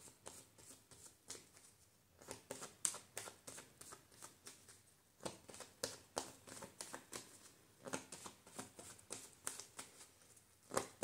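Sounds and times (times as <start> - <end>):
cards being shuffled by hand: 0.2 - 11.0.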